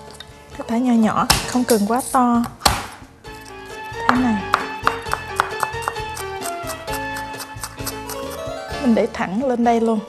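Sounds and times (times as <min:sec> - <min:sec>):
background music: 0:00.0 - 0:10.0
knife chopping on wooden board: 0:04.1 - 0:08.4.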